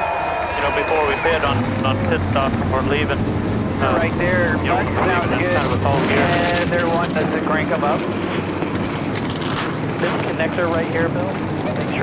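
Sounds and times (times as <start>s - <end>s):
race car engines idling: 0.0s - 12.0s.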